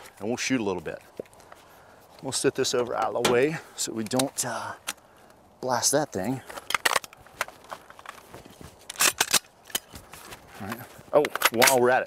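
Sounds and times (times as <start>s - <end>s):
rifle being handled and loaded: 0.9s - 5.4s, 6.4s - 12.0s.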